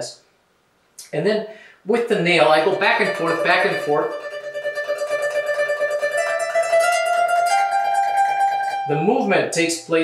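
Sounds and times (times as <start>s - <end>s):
harp string tremolo: 2.4s - 10.0s.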